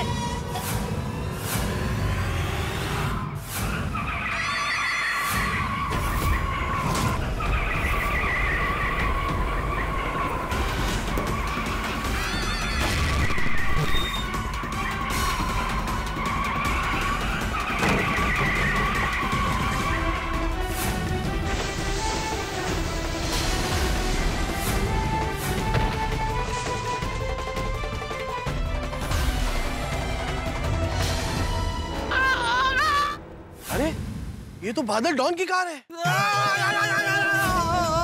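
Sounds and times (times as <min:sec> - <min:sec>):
dramatic background music: 0:00.0 - 0:34.6.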